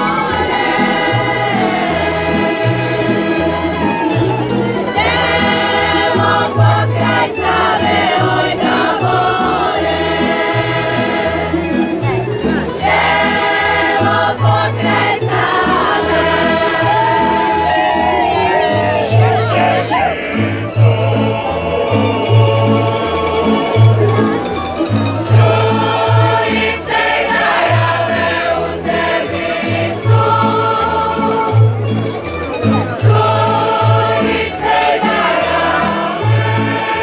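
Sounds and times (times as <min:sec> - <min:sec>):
women's choir singing: 0:00.0 - 0:04.0, 0:04.9 - 0:11.6, 0:12.6 - 0:24.2, 0:25.2 - 0:31.8, 0:32.9 - 0:37.0
low bass line: 0:00.0 - 0:34.3
plucked string accompaniment: 0:00.0 - 0:37.0.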